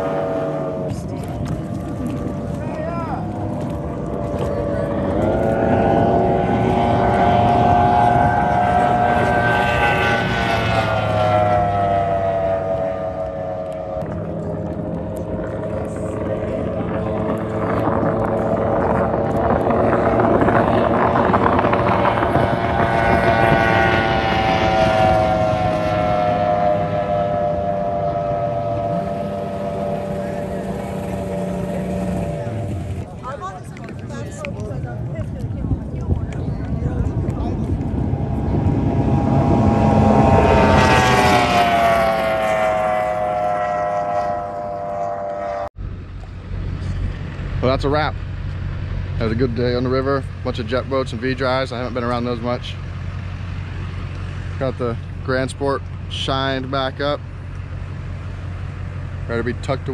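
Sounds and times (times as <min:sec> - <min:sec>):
race boat engine passing: 0:00.0 - 0:59.9.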